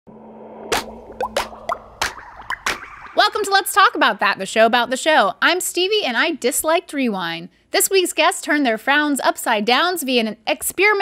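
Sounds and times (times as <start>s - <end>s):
cartoon plops: 0.7s - 3.5s.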